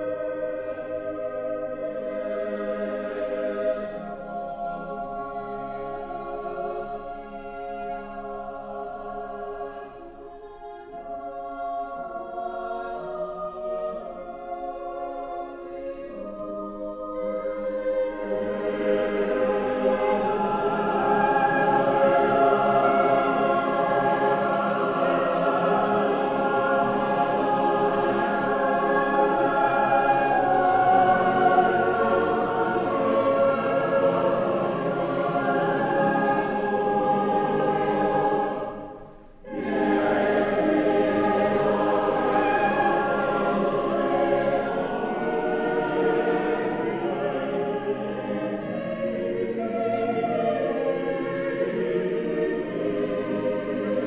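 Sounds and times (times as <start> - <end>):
choir singing sustained chords: 0.0 - 54.0.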